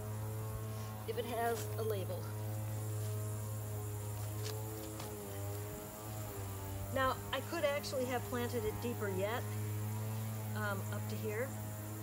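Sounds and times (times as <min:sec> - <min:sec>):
droning hum of held tones: 0:00.0 - 0:12.0.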